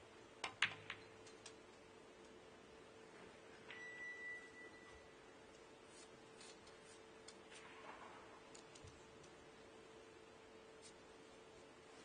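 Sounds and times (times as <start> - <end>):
faint steady hum: 0.0 - 12.0
high beep-like tone: 3.7 - 5.1.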